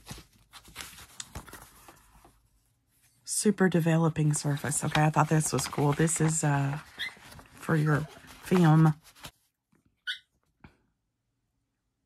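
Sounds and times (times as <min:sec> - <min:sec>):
paper envelope rustling: 0:00.0 - 0:02.6, 0:04.3 - 0:09.5.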